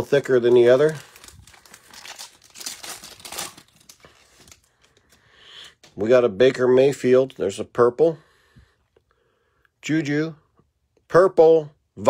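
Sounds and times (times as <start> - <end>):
foil wrapper tearing and crinkling: 0.0 - 5.0.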